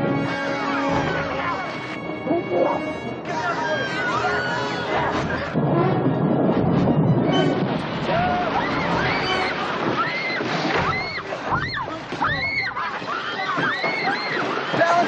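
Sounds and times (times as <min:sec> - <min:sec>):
film score music: 0:00.0 - 0:09.9
people shouting and screaming: 0:02.8 - 0:15.0.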